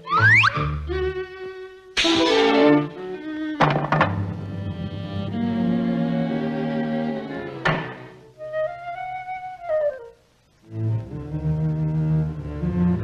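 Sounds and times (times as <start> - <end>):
high flute-like melody: 0.0 - 1.4, 8.3 - 10.2
sharp knock: 3.6 - 4.3, 7.6 - 8.2.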